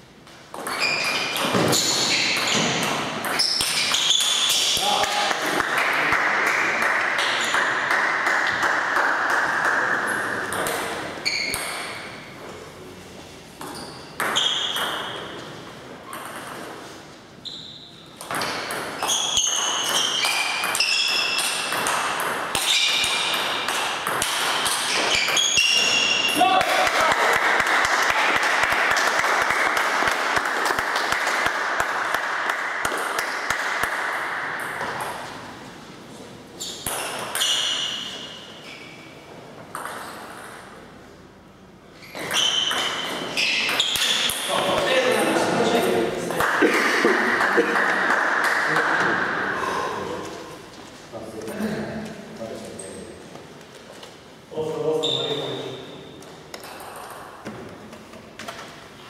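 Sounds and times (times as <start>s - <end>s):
dense clapping: 5.0s - 10.1s, 26.6s - 34.1s, 46.4s - 49.2s.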